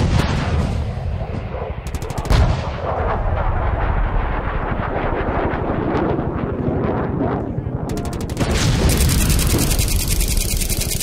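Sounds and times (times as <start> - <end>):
rapid machine gun fire: 1.9 - 2.5, 7.9 - 11.0.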